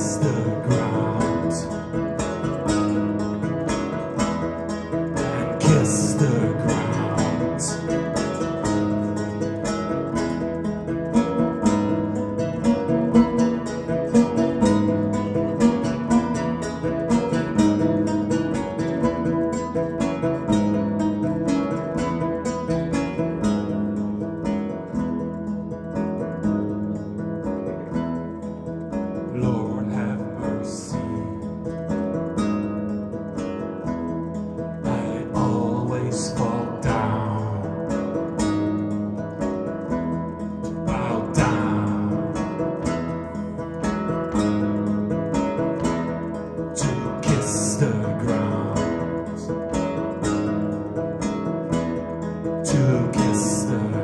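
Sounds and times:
low bass notes: 0:00.0 - 0:54.0
lute plucked notes: 0:00.0 - 0:54.0.

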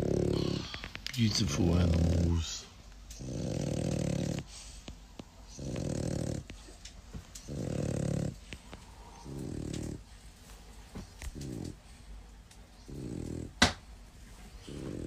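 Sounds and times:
dog snoring: 0:00.0 - 0:10.2, 0:11.0 - 0:12.0, 0:12.8 - 0:13.9, 0:14.5 - 0:15.0.

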